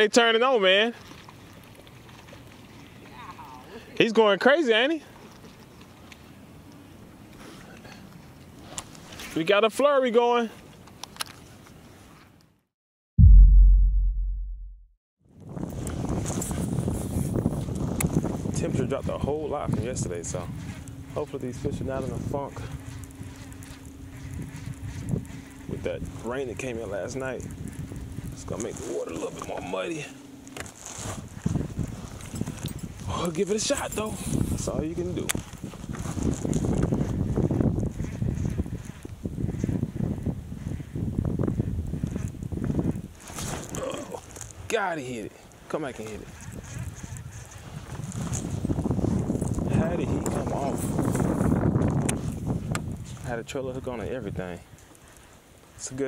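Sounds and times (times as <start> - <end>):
deep boom sound effect: 13.2 - 14.9
wind noise on microphone: 15.3 - 44.7, 46.1 - 54.8.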